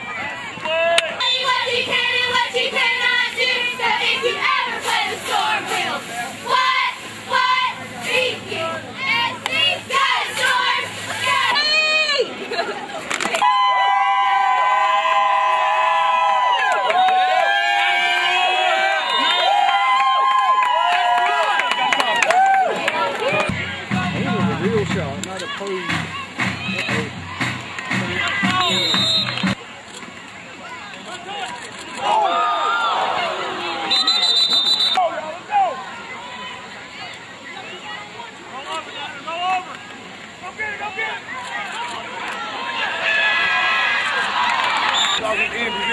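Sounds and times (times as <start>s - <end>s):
crowd cheering and chanting: 0.0s - 12.6s, 13.3s - 29.6s, 31.9s - 37.7s, 40.4s - 45.9s
low repeating beat: 23.5s - 29.6s.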